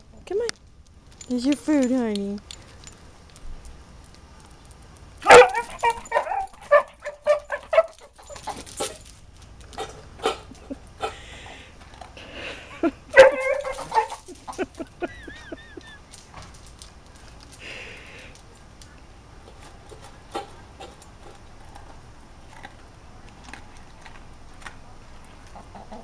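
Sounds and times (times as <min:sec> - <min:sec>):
dog barking: 0:05.2 - 0:08.0, 0:13.1 - 0:14.2
dog eating from metal bowl: 0:05.2 - 0:10.4, 0:13.2 - 0:14.6, 0:19.4 - 0:26.0.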